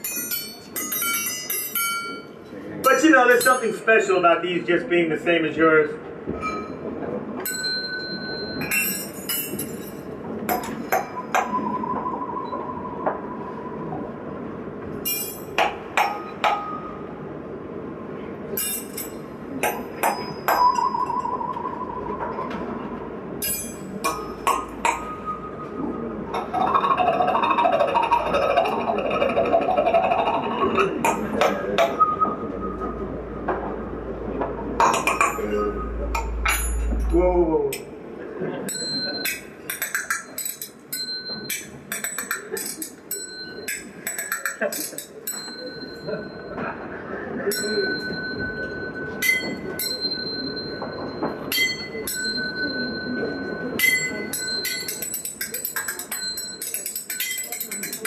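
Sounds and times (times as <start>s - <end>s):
small cymbals clinking: 15.0s - 15.6s, 53.8s - 58.0s
deep rumble: 32.7s - 38.1s
voice-like sound: 34.9s - 37.8s.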